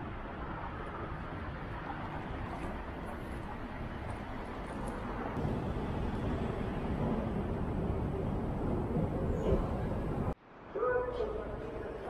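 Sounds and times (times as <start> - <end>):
road traffic rumble: 0.0 - 10.4.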